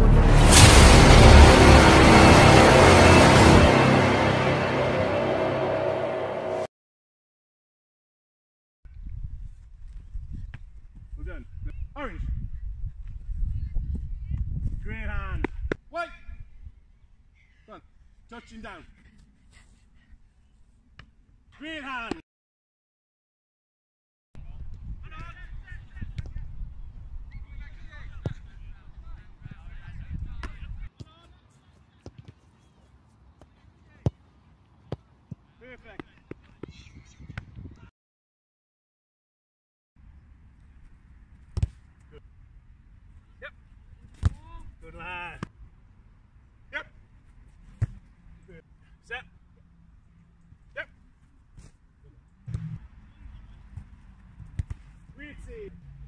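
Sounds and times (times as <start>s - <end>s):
wind buffeting microphone: 8.9s - 16.8s
football being kicked: 41.5s - 41.8s, 44.1s - 44.5s, 53.8s - 54.9s
football kick thud: 41.5s - 41.8s, 54.5s - 54.8s.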